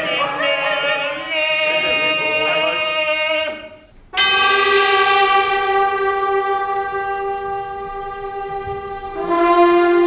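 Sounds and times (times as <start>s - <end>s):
orchestra sustained brass chord: 4.1s - 10.0s.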